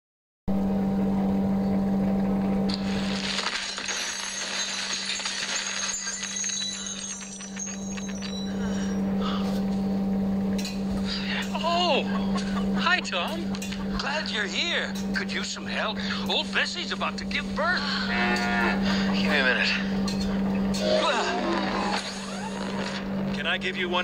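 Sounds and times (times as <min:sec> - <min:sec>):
steady low hum: 0:00.5 - 0:24.0
debris clinking and tinkling: 0:02.7 - 0:09.1.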